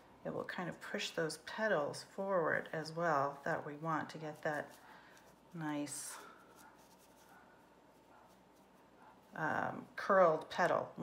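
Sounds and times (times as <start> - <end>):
fingers rustling yarn: 0.0 - 11.0.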